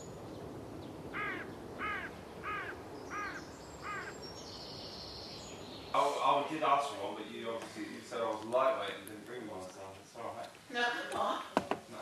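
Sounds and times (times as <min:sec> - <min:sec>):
steady low hiss: 0:00.0 - 0:12.0
crow-like cawing calls: 0:01.1 - 0:04.2.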